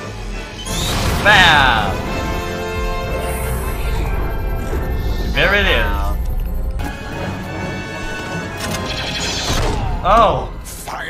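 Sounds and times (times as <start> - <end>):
film score held tones: 0.0 - 11.0.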